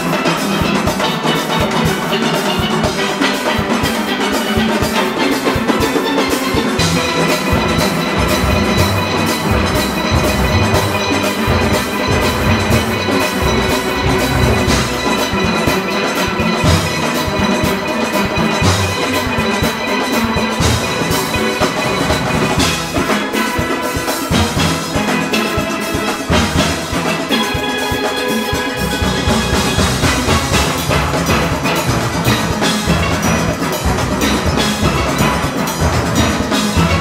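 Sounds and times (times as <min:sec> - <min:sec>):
drum kit and congas: 0:00.0 - 0:37.0
massed steel pans: 0:00.0 - 0:37.0.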